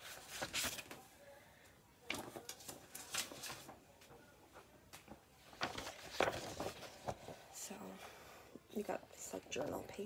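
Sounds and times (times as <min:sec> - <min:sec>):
paper and packaging rustling: 0:00.0 - 0:01.0, 0:02.0 - 0:07.6.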